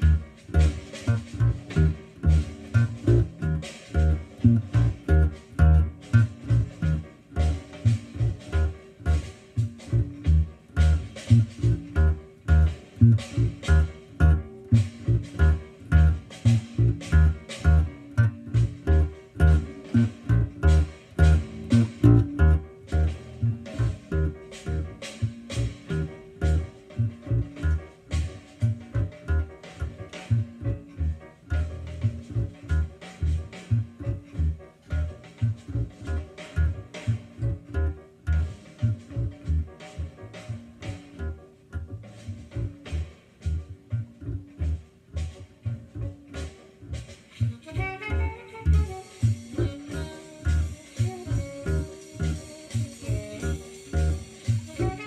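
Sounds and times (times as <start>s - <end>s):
electric bass guitar plucked: 0.0s - 55.0s.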